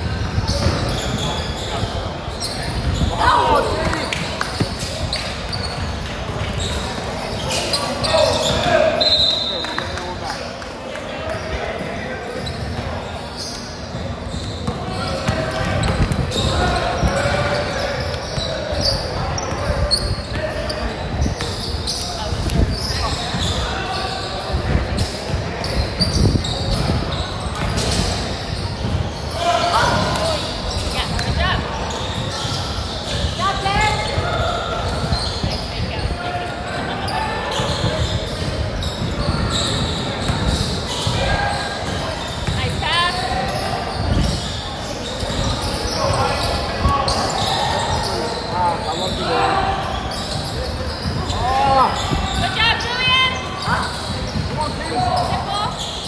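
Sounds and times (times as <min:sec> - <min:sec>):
basketball bouncing on court: 0:00.0 - 0:03.1, 0:13.9 - 0:17.4, 0:24.9 - 0:29.2, 0:37.5 - 0:47.5, 0:53.4 - 0:55.4
sneakers squeaking: 0:00.0 - 0:56.0.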